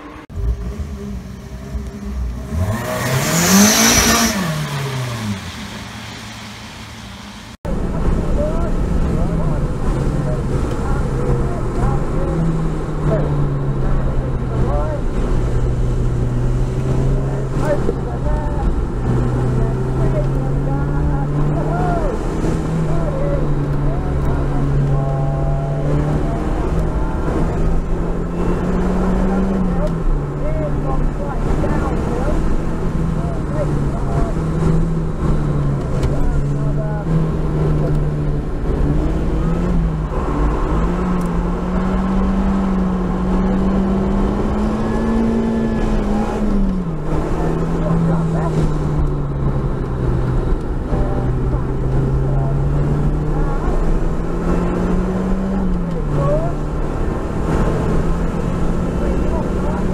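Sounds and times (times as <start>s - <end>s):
car engine in cabin: 0.0s - 59.9s
car passing at speed: 0.0s - 59.9s
road and tyre noise: 0.0s - 59.9s.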